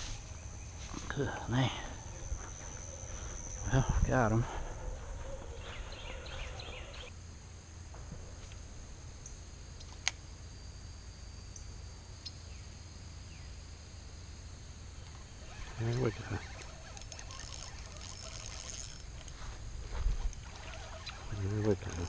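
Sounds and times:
faint chirps: 0.0 - 7.1, 15.0 - 22.0
high-pitched insect drone: 0.0 - 7.2, 8.4 - 22.0.

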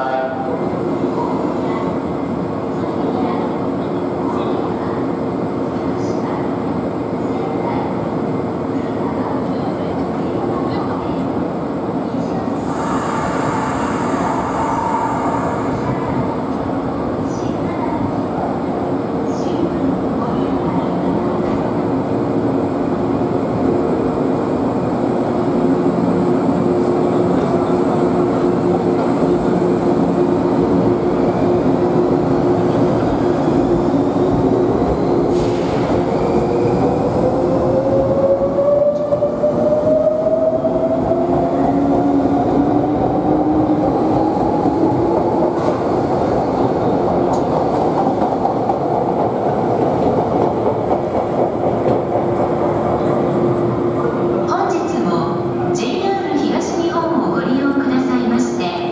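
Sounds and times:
electric train passing: 12.6 - 16.9.

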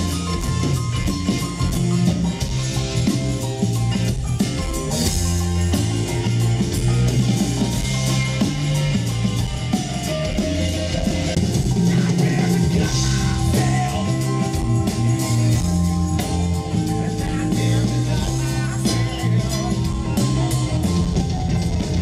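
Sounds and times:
bass line: 0.0 - 22.0
drum kit beat: 0.0 - 22.0
electric guitar: 0.0 - 22.0
rock band playing: 0.0 - 22.0.

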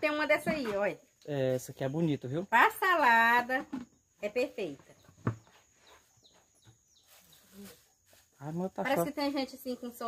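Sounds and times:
faint bird chirps: 4.0 - 8.5.

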